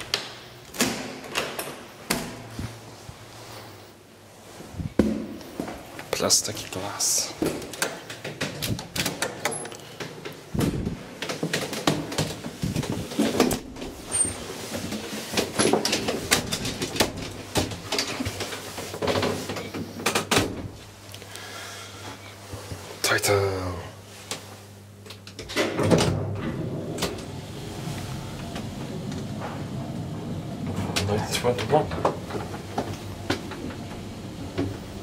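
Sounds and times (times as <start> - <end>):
elevator clicking and rattling: 7.6 - 20.8, 25.2 - 35.0
elevator motor hum: 25.3 - 35.0.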